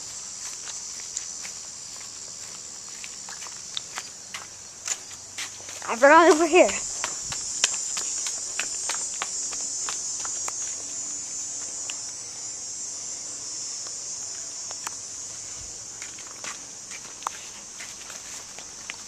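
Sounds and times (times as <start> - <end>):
footsteps in grass: 0.0 - 12.1, 14.7 - 19.0
insects chorus: 0.0 - 19.0.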